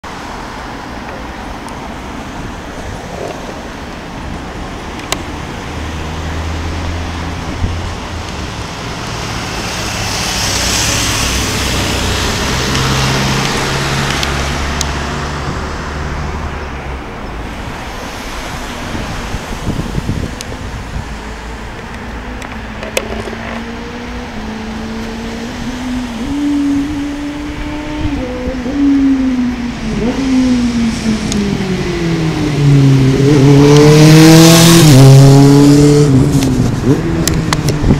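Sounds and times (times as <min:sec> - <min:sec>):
road traffic: 0:00.0 - 0:37.9
engine pulling away: 0:22.2 - 0:37.9.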